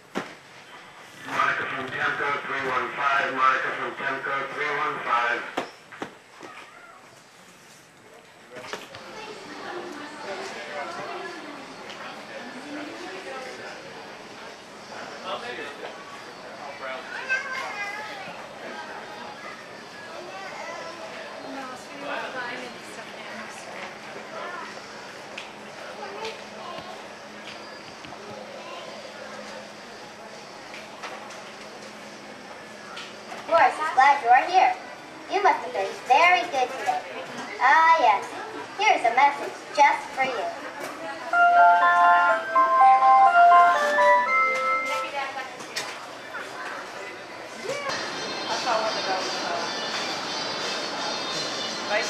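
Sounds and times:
chatter of shoppers: 0:00.0 - 0:52.0
children's voices: 0:17.1 - 0:18.4, 0:19.4 - 0:21.1.

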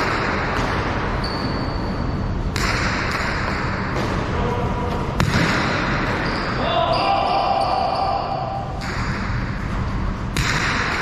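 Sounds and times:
sharp crack of ball being hit: 0:02.5 - 0:04.3, 0:05.2 - 0:06.1, 0:10.3 - 0:11.0.

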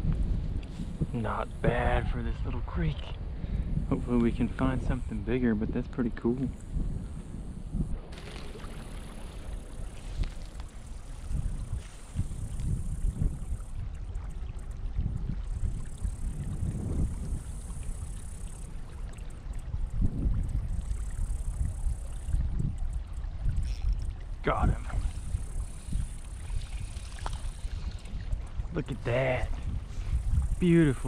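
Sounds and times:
wind buffeting the microphone: 0:00.0 - 0:31.0
fishing reel whirring: 0:06.6 - 0:24.4, 0:25.0 - 0:28.5.

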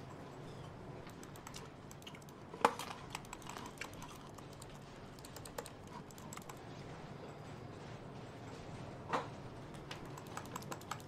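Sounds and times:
laptop keyboard typing: 0:01.0 - 0:06.8, 0:09.7 - 0:11.0.

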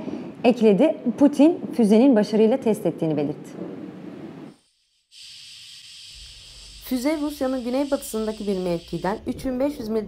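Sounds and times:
steady hiss: 0:04.1 - 0:10.0.

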